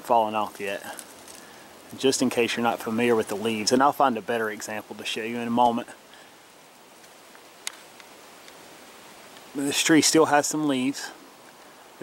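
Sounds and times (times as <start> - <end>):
outdoor background hiss: 0.0 - 12.0
faint ticks: 11.4 - 11.8.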